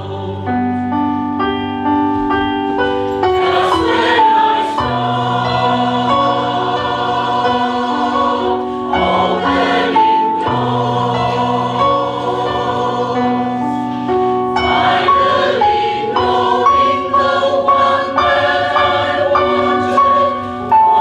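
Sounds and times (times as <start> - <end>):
mixed choir singing: 0.0 - 0.8, 3.2 - 21.0.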